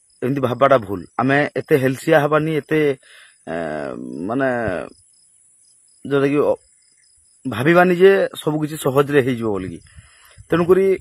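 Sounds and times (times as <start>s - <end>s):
crickets chirping: 0.0s - 11.0s
man's voice: 0.2s - 5.0s, 6.1s - 6.6s, 7.5s - 11.0s.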